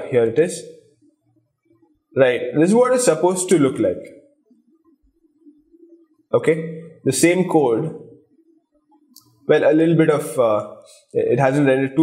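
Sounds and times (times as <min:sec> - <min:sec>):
man talking: 0:00.0 - 0:00.7, 0:02.1 - 0:04.2, 0:06.3 - 0:08.1, 0:09.5 - 0:12.0
faint low hum: 0:00.0 - 0:12.0.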